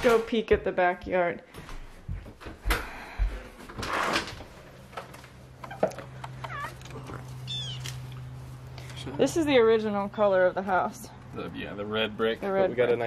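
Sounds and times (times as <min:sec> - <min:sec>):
cat meowing: 0:06.4 - 0:07.9.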